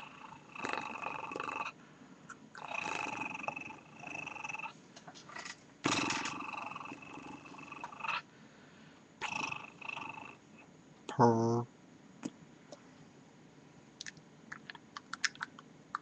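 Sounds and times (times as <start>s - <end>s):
man making wordless throat noise: 11.1s - 11.6s.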